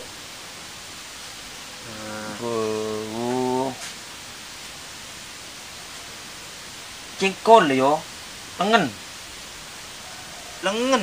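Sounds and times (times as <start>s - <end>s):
steady background hiss: 0.0s - 11.0s
man's low drawn-out vocal sound: 1.8s - 3.8s.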